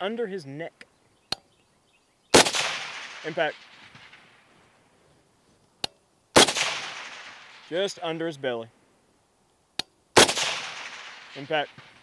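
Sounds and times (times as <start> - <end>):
suppressed rifle shot with echo: 2.3 - 4.9, 5.8 - 7.9, 9.8 - 12.0.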